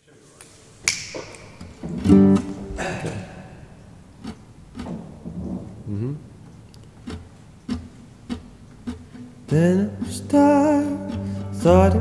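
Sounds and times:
acoustic guitar strums: 1.1 - 12.0.

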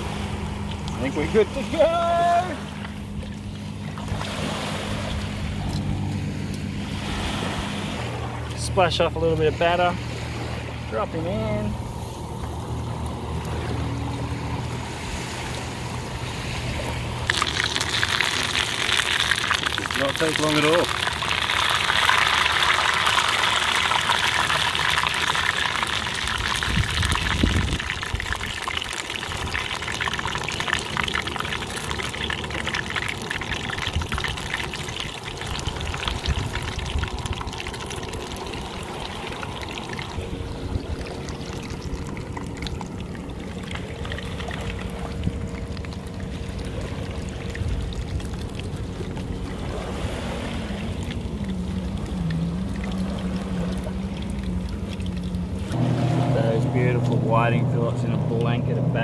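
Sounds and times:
fish deep-frying in oil: 17.2 - 44.8, 51.3 - 53.1.

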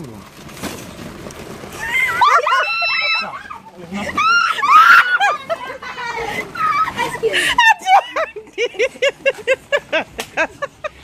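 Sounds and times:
high-pitched voices shrieking: 1.8 - 5.4.

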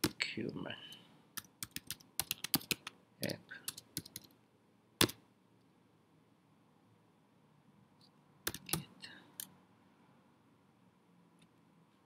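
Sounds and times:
keyboard typing: 1.4 - 3.0, 3.6 - 4.4, 8.4 - 9.5.

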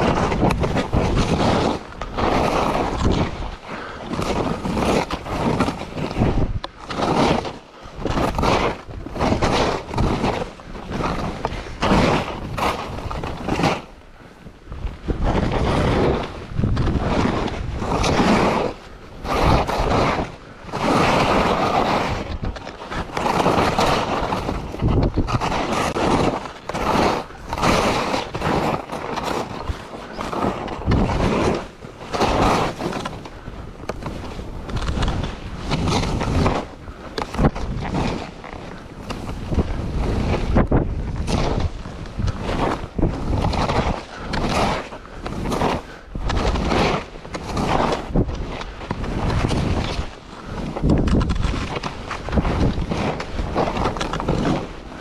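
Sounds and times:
skis hissing through snow: 0.0 - 6.3, 6.9 - 14.0, 17.0 - 22.3, 23.0 - 33.4, 42.4 - 50.8
wind noise on microphone: 0.0 - 55.0.

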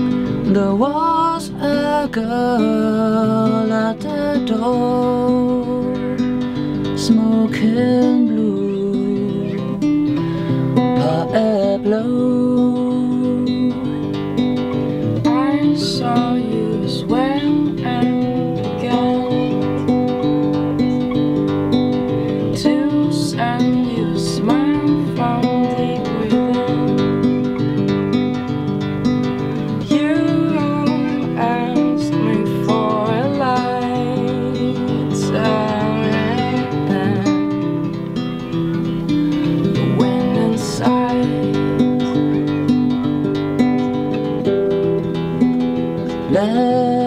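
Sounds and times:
woman singing: 0.0 - 21.3, 21.9 - 43.2, 46.0 - 47.0
acoustic guitar playing: 0.0 - 47.0.

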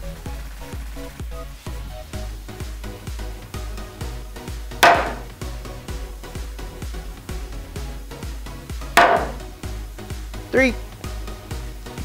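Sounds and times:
background music with steady beat: 0.0 - 12.0
mallet striking chisel into wood: 4.8 - 5.3, 9.0 - 9.4.

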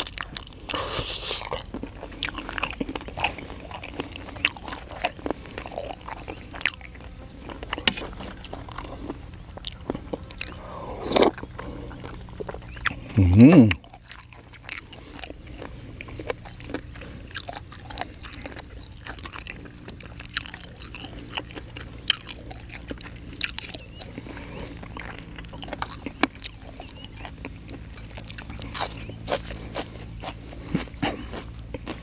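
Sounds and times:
person chewing crunchy vegetables: 0.0 - 32.0
mouth clicks: 9.6 - 19.4.

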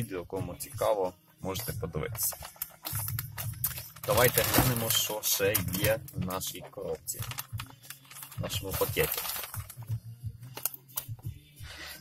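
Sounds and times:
plastic packaging rustling: 2.2 - 9.9.

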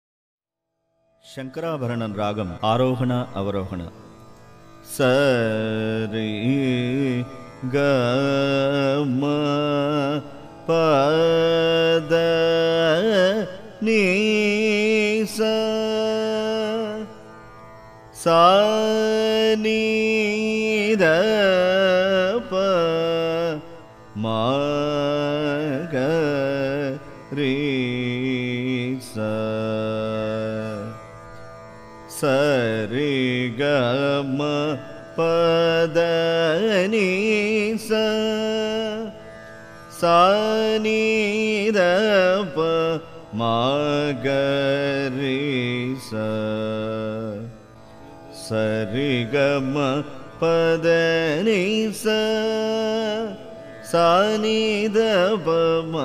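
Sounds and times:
man singing wordless vowels: 1.2 - 4.1, 4.8 - 17.3, 18.1 - 31.0, 32.1 - 39.2, 39.9 - 47.6, 48.3 - 56.0.

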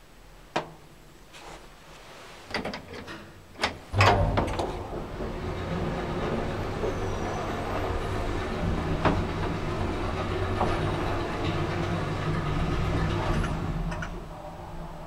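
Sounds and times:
lift car hum and rumble: 2.5 - 15.0.

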